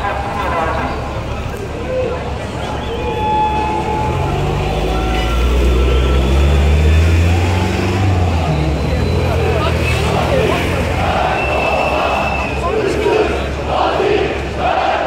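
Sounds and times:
large crowd noise: 0.0 - 15.0
vehicle engine humming: 0.0 - 15.0.

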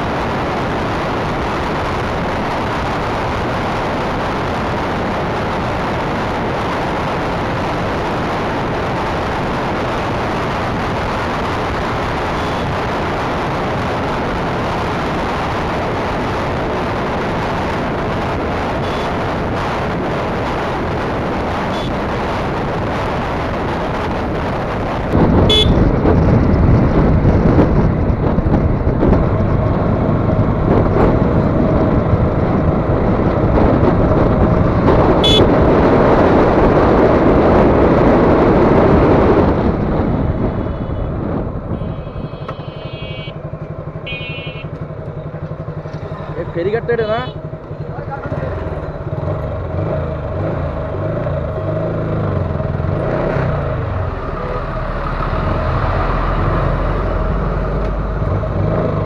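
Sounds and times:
wind rushing: 0.0 - 44.3
motorcycle engine at speed: 0.0 - 59.0.

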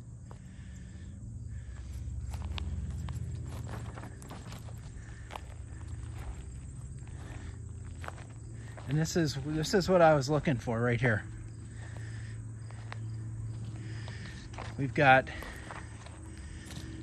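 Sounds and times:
steady low hum: 0.0 - 17.0
footsteps through grass and leaves: 1.6 - 17.0.

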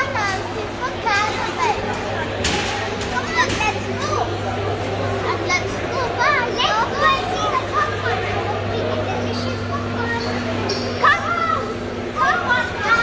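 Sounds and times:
children's voices: 0.0 - 13.0
crowd chatter: 0.0 - 13.0
steady low hum: 0.0 - 13.0.

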